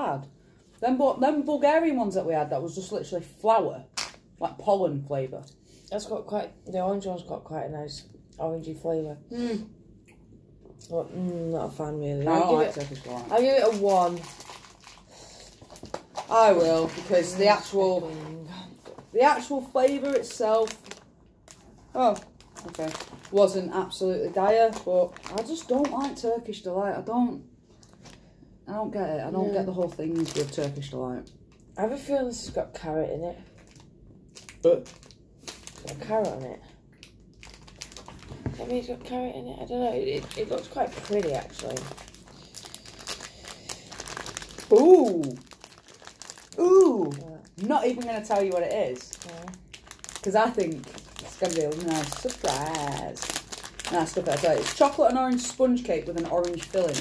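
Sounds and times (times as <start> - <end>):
snack packet crinkling: 4.0 - 4.3, 12.3 - 26.4, 29.6 - 31.5, 33.5 - 38.8, 39.9 - 57.0.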